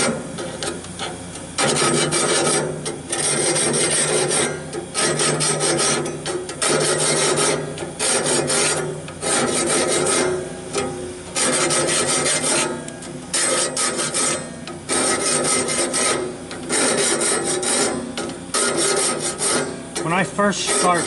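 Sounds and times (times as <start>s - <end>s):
file rasping on saw blade: 1.6s - 21.0s.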